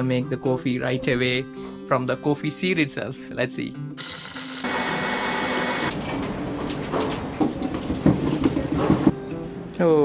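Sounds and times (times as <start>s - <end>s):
coffee grinder motor whirring: 4.0s - 5.9s.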